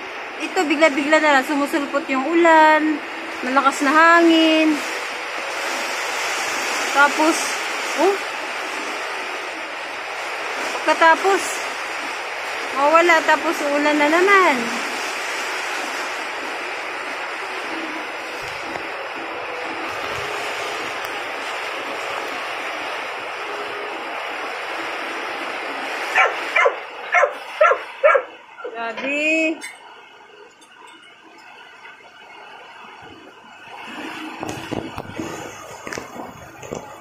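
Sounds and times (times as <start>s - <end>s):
heavy rain pouring: 0.0s - 37.0s
dog barking: 26.1s - 28.7s.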